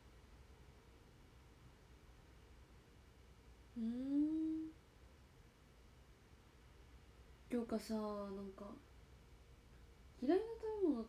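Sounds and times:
woman humming in thought: 3.8s - 4.8s.

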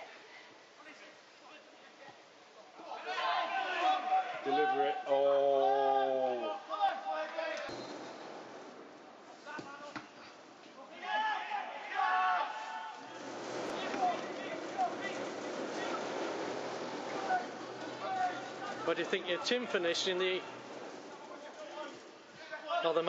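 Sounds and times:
background murmur: 0.0s - 23.0s
indistinct shouts: 2.8s - 7.7s, 10.9s - 13.2s.

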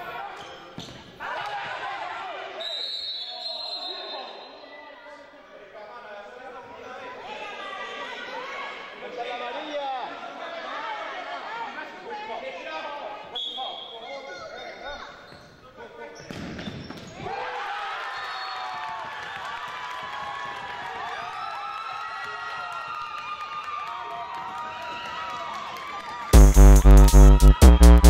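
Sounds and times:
players' voices in echoing hall: 0.0s - 19.0s
ball bouncing on gym floor: 16.2s - 17.3s
electronic music with pulsing beat: 26.4s - 28.0s.

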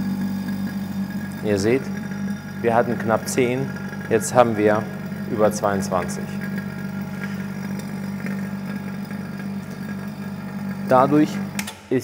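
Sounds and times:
vacuum pump humming: 0.0s - 12.0s.

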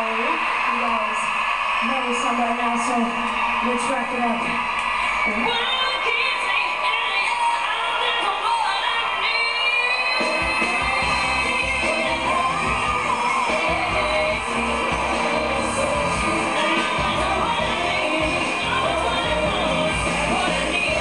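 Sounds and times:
woman singing pop vocal runs: 5.4s - 21.0s
full band with drums: 10.1s - 21.0s.

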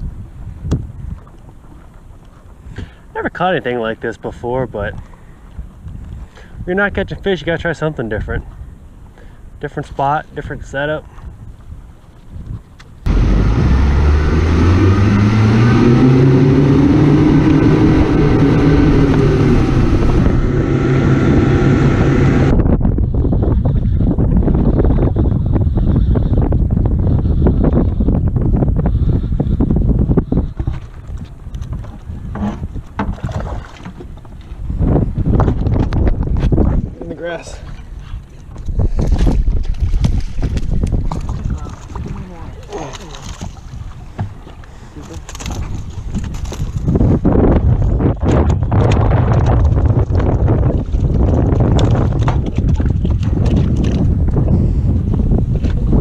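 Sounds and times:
water noise: 0.0s - 56.0s
wind on microphone: 0.0s - 56.0s
boat motor speeding up: 13.1s - 22.6s
water splashing: 30.6s - 34.6s, 38.9s - 46.9s.

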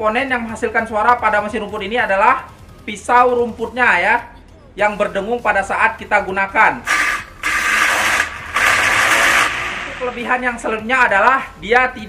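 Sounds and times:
grass trimmer whirring: 6.8s - 10.5s.

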